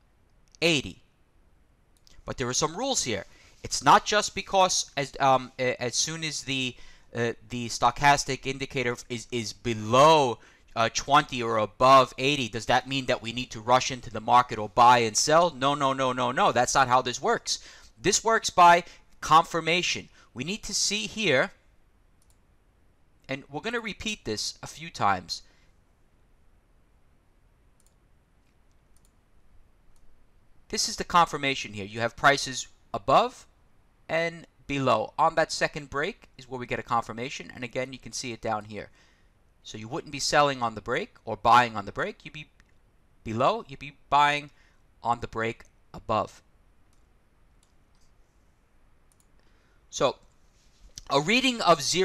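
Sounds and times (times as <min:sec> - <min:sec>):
room hiss: 0:00.0 - 0:52.0
computer mouse clicks: 0:22.2 - 0:22.5, 0:27.8 - 0:29.2, 0:46.9 - 0:48.2, 0:49.1 - 0:49.5.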